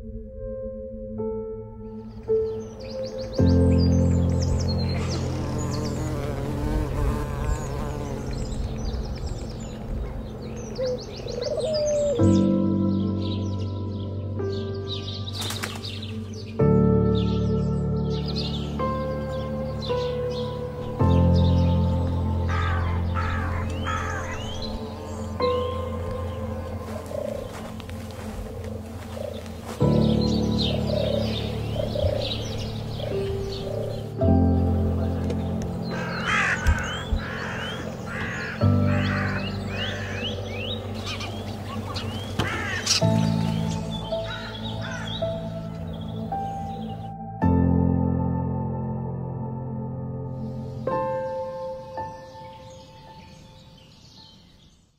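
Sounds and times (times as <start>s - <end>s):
small birds chirping: 2.2s - 47.2s
flying insect buzzing: 4.8s - 9.1s.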